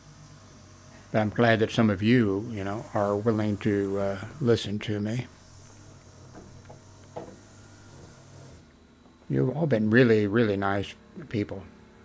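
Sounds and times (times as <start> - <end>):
low hum and hiss: 0.0 - 12.0.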